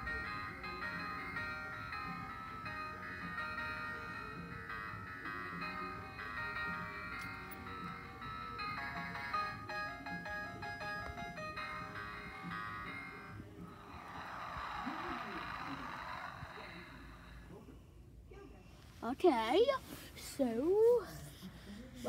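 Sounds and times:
tinny electronic toy melody: 0:00.0 - 0:17.4.

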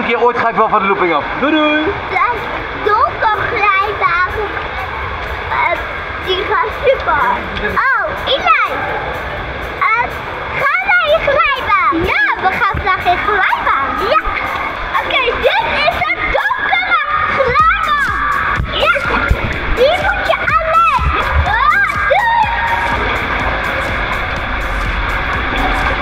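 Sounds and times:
splashing water: 0:01.2 - 0:26.0
children's excited voices: 0:02.1 - 0:09.2, 0:09.8 - 0:26.0
background music: 0:02.1 - 0:26.0.

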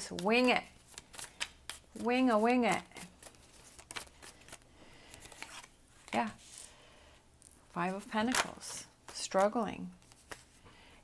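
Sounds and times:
cards rustling: 0:00.0 - 0:06.7, 0:07.4 - 0:10.6.

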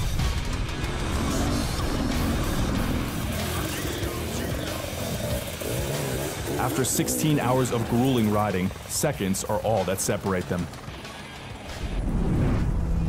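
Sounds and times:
dirt bike engine revving: 0:00.0 - 0:12.0
background music: 0:00.0 - 0:13.0.

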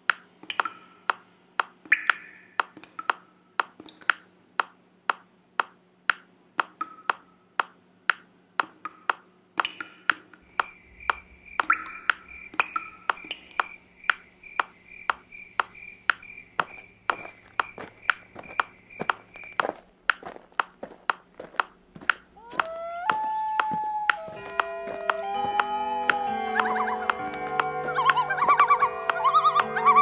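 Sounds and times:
metronome clicking: 0:00.0 - 0:30.0.

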